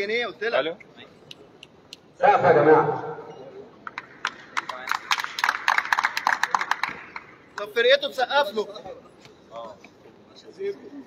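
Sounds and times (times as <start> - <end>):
people clapping hands: 3.8 - 7.8.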